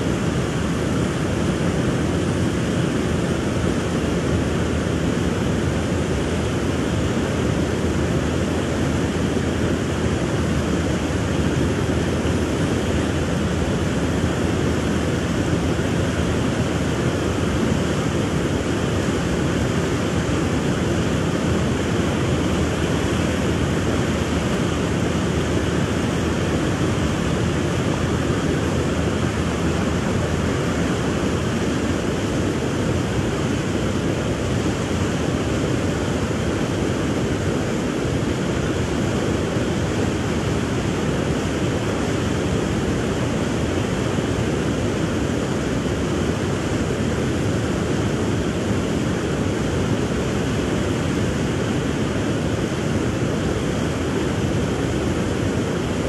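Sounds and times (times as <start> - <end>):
river water rushing: 0.0 - 56.0.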